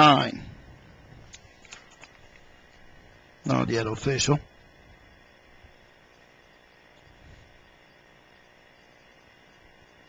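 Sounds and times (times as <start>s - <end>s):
faint background hiss and hum: 0.0s - 10.0s.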